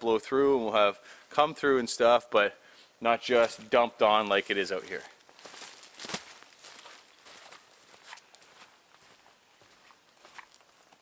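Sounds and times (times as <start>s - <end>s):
footsteps crunching through dry leaves: 4.8s - 11.0s.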